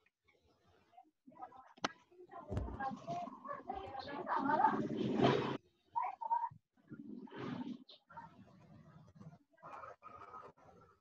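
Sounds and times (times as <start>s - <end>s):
child's voice over video call: 1.3s - 5.2s, 5.8s - 6.6s.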